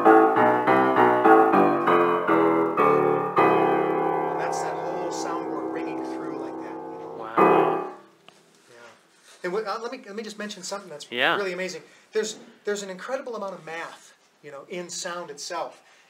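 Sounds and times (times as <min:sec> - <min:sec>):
grand piano low notes and chords: 0:00.0 - 0:08.1.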